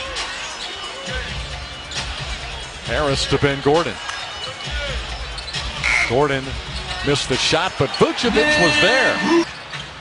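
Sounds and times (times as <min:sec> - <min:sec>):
crowd noise: 0:00.0 - 0:10.0
sneaker squeak: 0:05.3 - 0:05.7.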